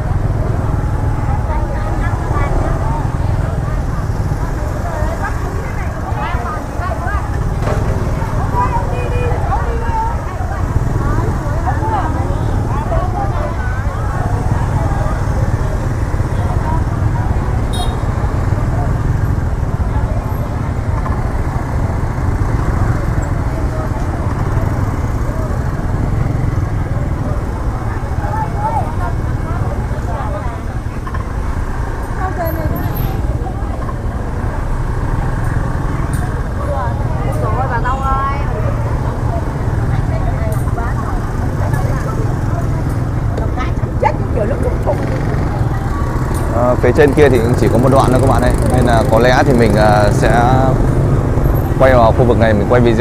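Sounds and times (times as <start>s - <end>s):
people talking: 0.0s - 53.0s
scooter and motorbike engines: 0.0s - 53.0s.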